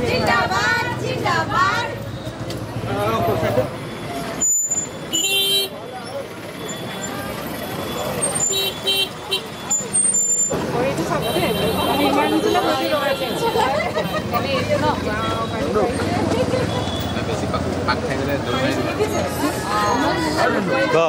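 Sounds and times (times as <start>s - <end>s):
people's voices: 0.0s - 21.0s
street noise: 0.0s - 21.0s
rickshaw horn beeping: 3.8s - 14.4s, 15.0s - 15.9s, 16.5s - 17.4s.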